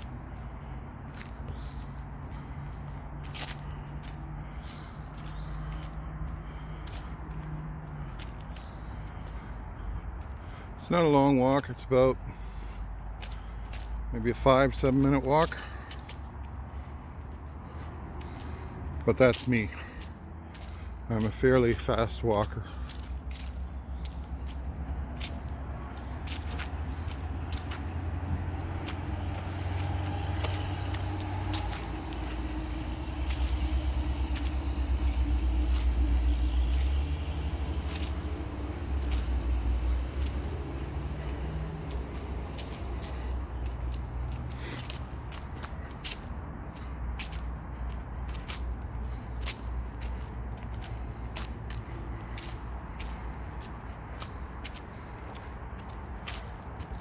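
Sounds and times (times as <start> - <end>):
footsteps on paved path: 0.0 - 57.0
insects droning: 0.0 - 57.0.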